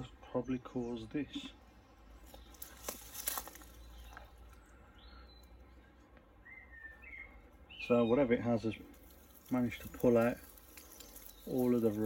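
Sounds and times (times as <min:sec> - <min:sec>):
outdoor background noise: 0:00.0 - 0:12.0
whistled bird calls: 0:06.4 - 0:08.3.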